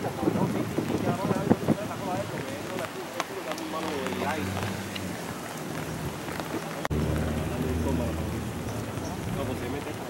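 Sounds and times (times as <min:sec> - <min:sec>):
rain falling: 0:00.0 - 0:10.0.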